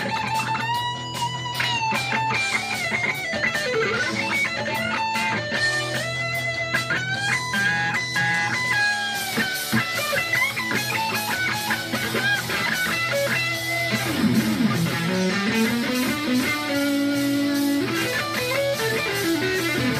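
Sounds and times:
electric guitar soloing: 0.0s - 19.9s
rock backing track with drums: 0.0s - 19.9s.

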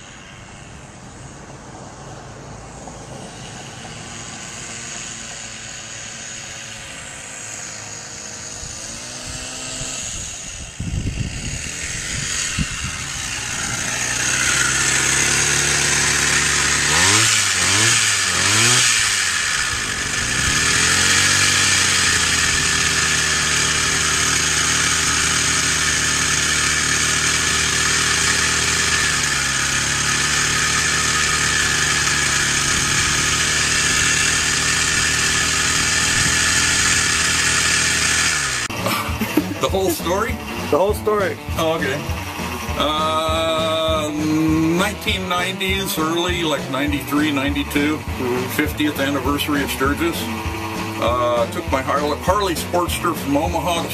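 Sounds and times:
small motorized bicycle engine: 0.0s - 53.9s.

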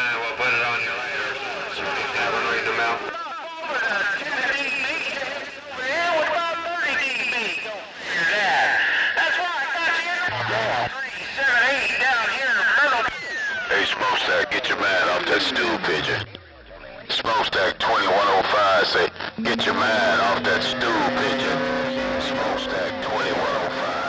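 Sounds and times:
radio band noise: 3.7s - 24.0s
distorted radio voices: 10.3s - 24.0s
tone sliding down: 19.4s - 24.0s.

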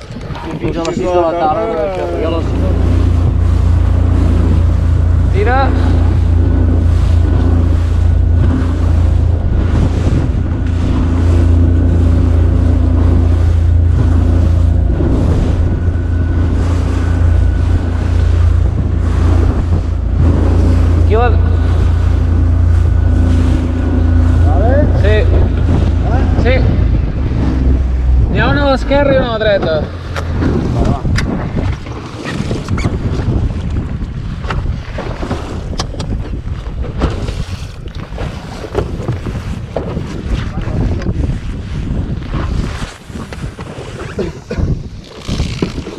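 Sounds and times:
outboard motor running: 0.0s - 45.9s
water rushing past hull: 0.0s - 45.9s
wind buffeting microphone: 0.0s - 45.9s.

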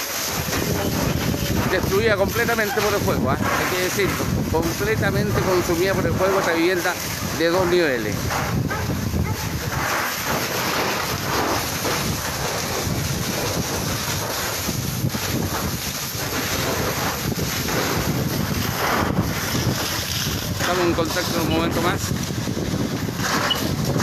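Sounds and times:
fire hose water jet and fire: 0.0s - 24.0s
wind on microphone: 0.3s - 24.0s.

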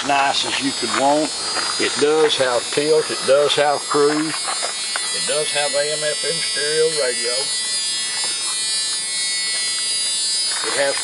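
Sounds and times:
man speaking: 0.0s - 4.4s, 5.2s - 7.5s, 10.6s - 11.0s
high-pitched electrical buzzing whine: 0.0s - 11.0s.

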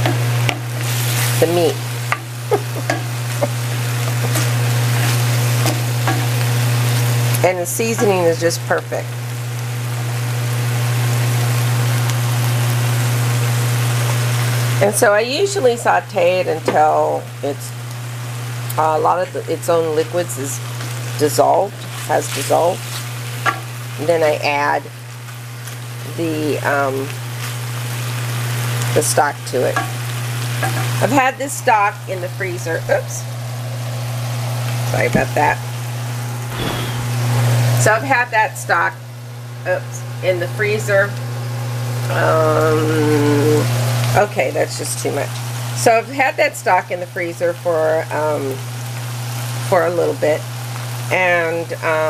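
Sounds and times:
beef sizzling in a pan: 0.0s - 52.0s
steady low hum: 34.7s - 37.6s
wooden spoon scraping: 36.5s - 37.2s.

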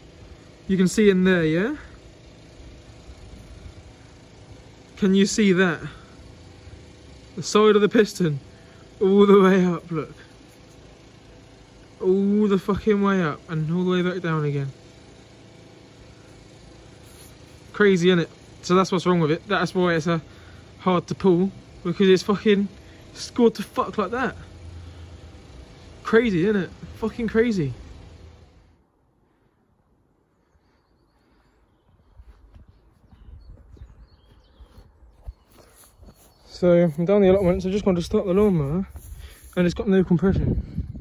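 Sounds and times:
faint bird chirps: 30.2s - 37.0s
wind rumble on microphone: 32.1s - 35.4s, 40.1s - 41.0s.

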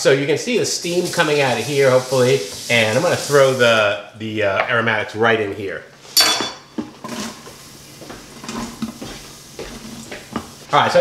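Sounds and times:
vegetables hissing in hot pot: 0.6s - 3.8s, 7.0s - 10.8s
utensils clinking on steel pot: 6.2s - 7.3s.

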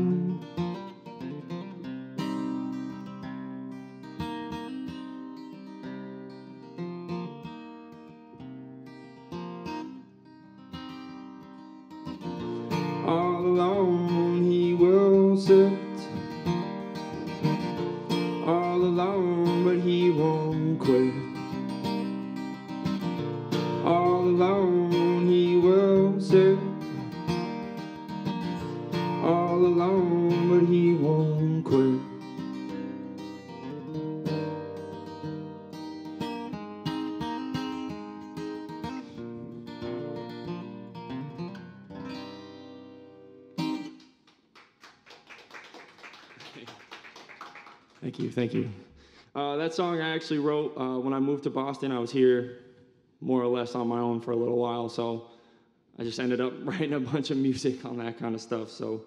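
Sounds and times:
acoustic guitar playing: 0.0s - 44.2s.

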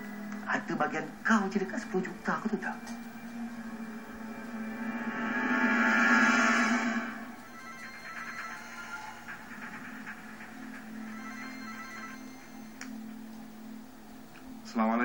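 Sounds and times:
steady low hum: 0.0s - 15.0s
dramatic music: 1.2s - 14.3s
phone ringtone ringing: 7.4s - 9.4s, 10.4s - 13.1s.

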